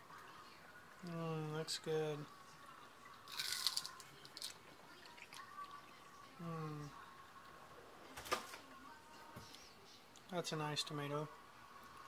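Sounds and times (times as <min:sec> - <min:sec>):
person chewing tomato: 0:03.3 - 0:04.5.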